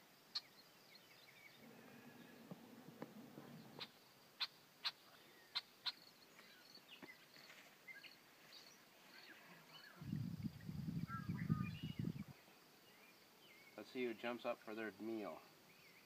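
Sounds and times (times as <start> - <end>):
low rumbling noise: 1.6 - 3.8
bird chirps: 3.5 - 14.0.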